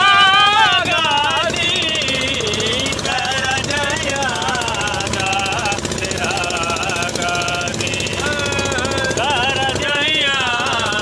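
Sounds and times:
motor boat engine knocking: 0.0s - 11.0s.

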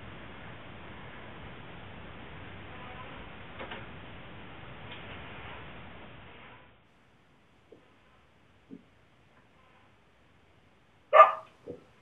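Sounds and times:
dog barking: 11.1s - 11.8s.

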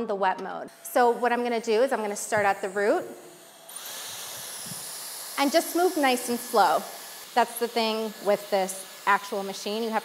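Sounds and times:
hair straightener motor whine: 0.7s - 10.0s.

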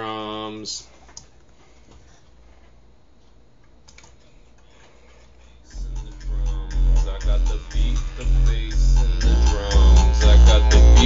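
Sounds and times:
computer keyboard clicks: 3.9s - 4.2s
drum and bass music: 5.7s - 11.0s.

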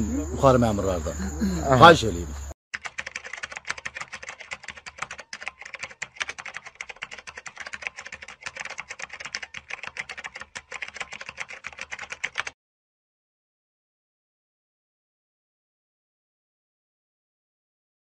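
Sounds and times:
keyboard key clicks: 2.8s - 12.5s.

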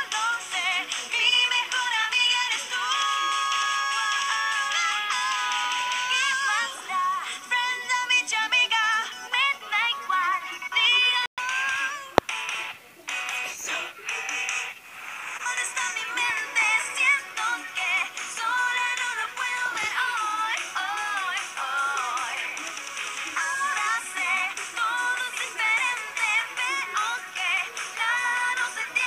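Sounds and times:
girls singing pop song from television: 0.0s - 29.0s.

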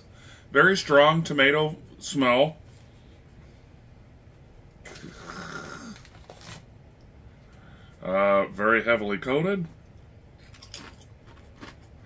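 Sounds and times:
low throaty hum: 1.7s - 10.6s
foil chip bag crinkling: 5.8s - 6.7s.

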